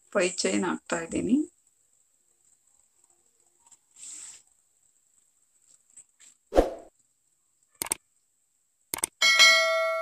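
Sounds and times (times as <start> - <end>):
double mouse click: 7.8 - 8.0.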